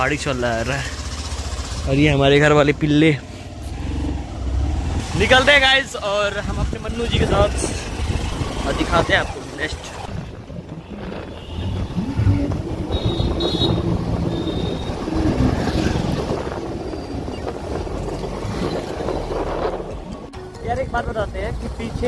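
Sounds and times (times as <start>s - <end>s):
motorcycle engine hum: 0.0s - 22.0s
road rumble: 0.0s - 22.0s
wind buffeting microphone: 6.4s - 20.3s.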